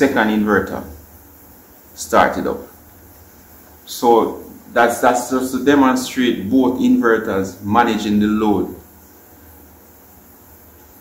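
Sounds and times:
faint hiss: 0:00.0 - 0:11.0
low electrical hum: 0:00.0 - 0:11.0.

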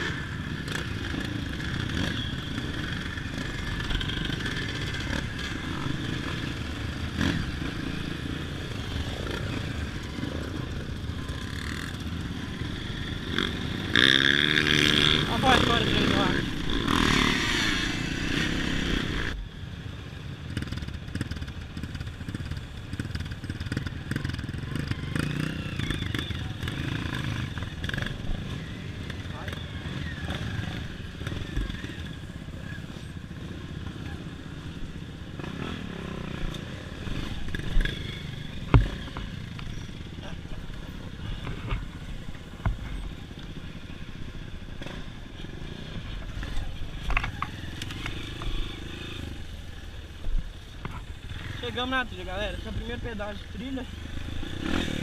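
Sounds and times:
dirt bike engine running: 0:00.0 - 0:19.4, 0:20.2 - 0:55.0.

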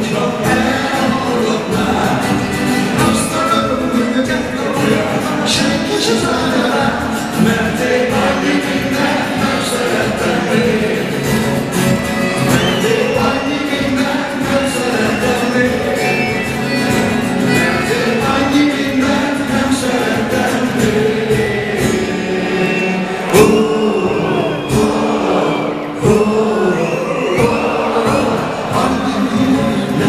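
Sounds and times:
accordion: 0:00.0 - 0:26.6
acoustic guitars: 0:00.0 - 0:30.0
person singing: 0:00.0 - 0:30.0.

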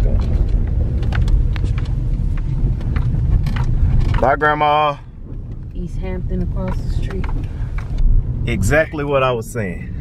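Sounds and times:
engine and road noise rumble: 0:00.0 - 0:10.0.

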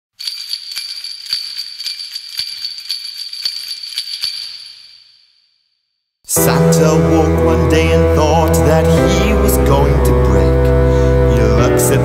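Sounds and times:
sleigh bells jingling: 0:00.1 - 0:05.7.

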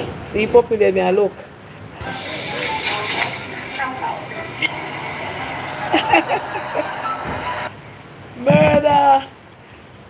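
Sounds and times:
background noise through phone speaker: 0:01.3 - 0:10.0
speech through phone speaker: 0:08.4 - 0:09.2.

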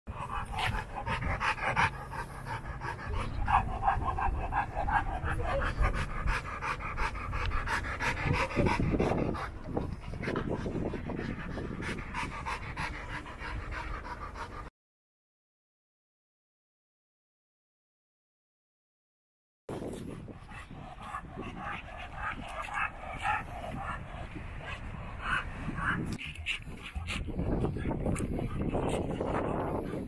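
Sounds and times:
dog panting: 0:00.1 - 0:14.7, 0:20.0 - 0:30.0.

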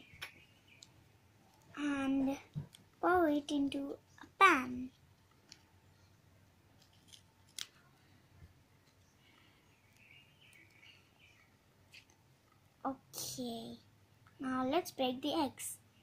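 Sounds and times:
child's voice: 0:01.8 - 0:04.9, 0:12.9 - 0:15.8.

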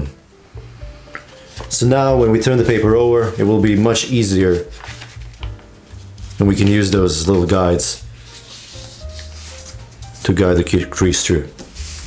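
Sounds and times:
fingers rubbing on paper: 0:02.6 - 0:10.6, 0:11.7 - 0:12.0.

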